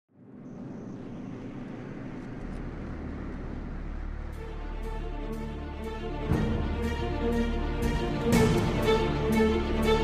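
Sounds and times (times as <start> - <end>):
deep low drone: 0.1 - 10.0.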